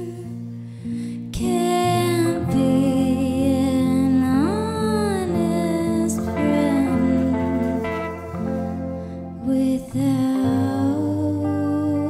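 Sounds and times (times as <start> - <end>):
acoustic guitar: 0.0 - 12.0
woman singing a held note: 1.5 - 12.0.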